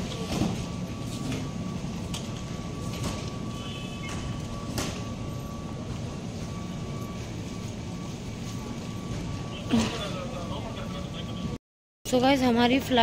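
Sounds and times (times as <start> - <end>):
low rumble of baggage hall: 0.0 - 13.0.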